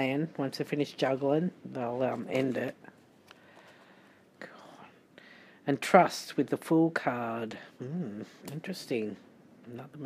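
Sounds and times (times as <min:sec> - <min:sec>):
person whispering: 0:04.4 - 0:05.0, 0:07.5 - 0:08.6.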